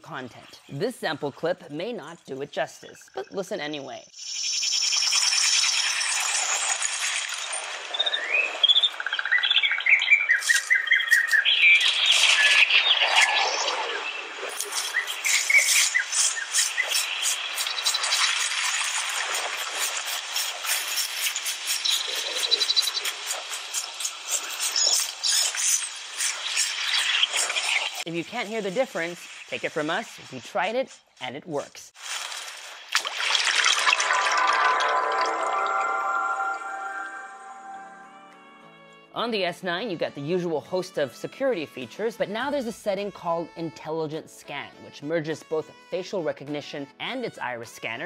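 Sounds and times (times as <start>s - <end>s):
insect-like buzzing: 4.2s - 9.5s
birds chirping: 21.8s - 23.2s.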